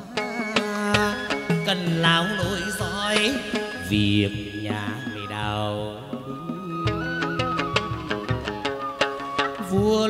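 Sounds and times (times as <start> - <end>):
gliding melodic notes: 0.0 - 9.8.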